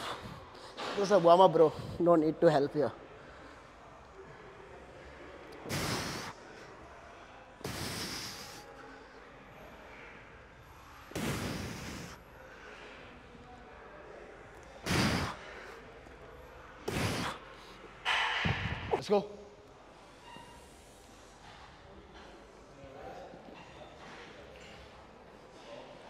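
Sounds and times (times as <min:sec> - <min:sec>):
man exhaling forcefully: 0:11.2 - 0:12.2, 0:14.8 - 0:15.4, 0:16.9 - 0:17.4.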